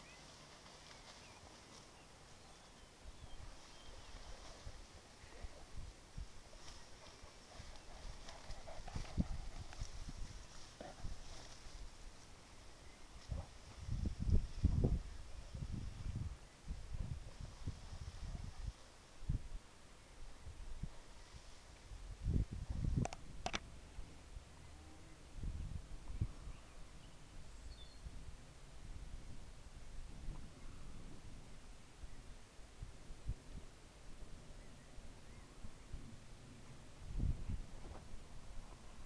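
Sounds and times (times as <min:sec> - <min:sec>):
rustling of crop stalks: 0:00.0 - 0:24.4.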